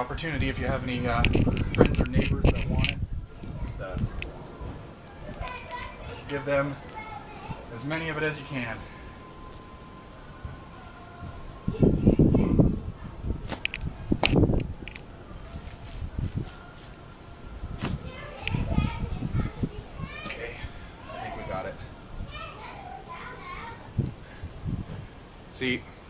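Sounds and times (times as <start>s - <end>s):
children's voices: 1.2s - 14.1s, 17.9s - 24.1s.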